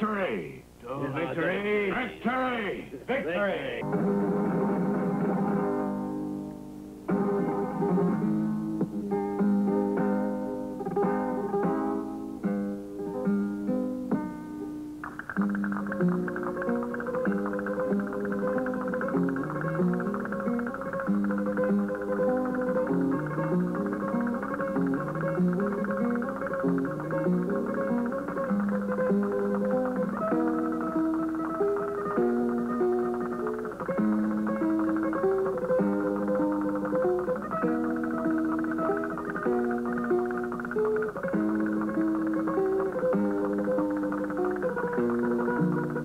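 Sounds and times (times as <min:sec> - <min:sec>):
flamenco guitar playing: 0:00.0 - 0:46.0.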